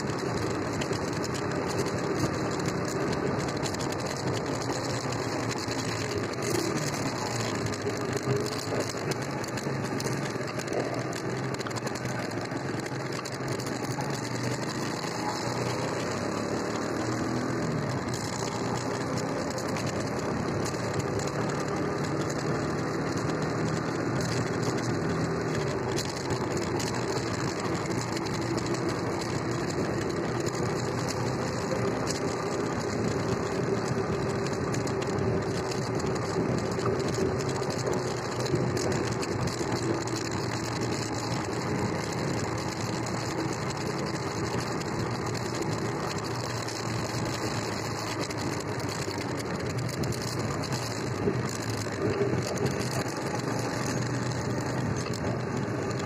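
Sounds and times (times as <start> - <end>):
motorcycle engine running: 0.0 - 56.0
road and air noise: 0.0 - 56.0.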